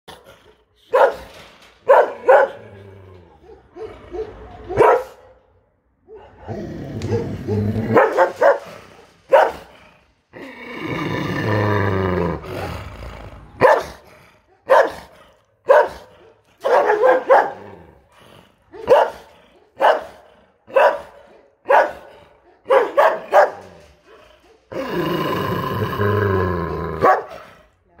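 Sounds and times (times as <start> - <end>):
dog barking: 0.9 - 2.7, 3.3 - 5.4, 6.0 - 9.7, 13.6 - 17.8, 18.7 - 23.9, 27.0 - 27.5
dog deep drawn-out cries: 6.0 - 9.5.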